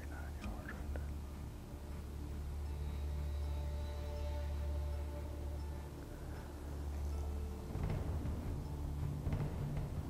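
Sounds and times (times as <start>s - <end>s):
man whispering: 0.0s - 1.2s
steady low hum: 0.0s - 10.0s.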